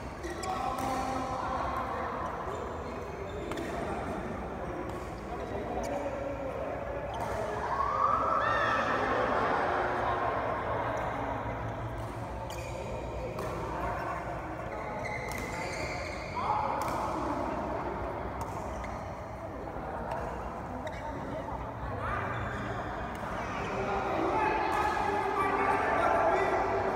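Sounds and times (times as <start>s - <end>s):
people talking: 0.0s - 18.8s, 19.4s - 26.9s.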